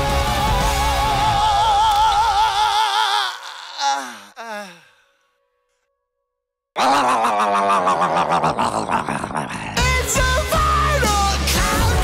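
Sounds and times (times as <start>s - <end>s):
heavy metal music: 0.0s - 2.2s, 8.4s - 12.0s.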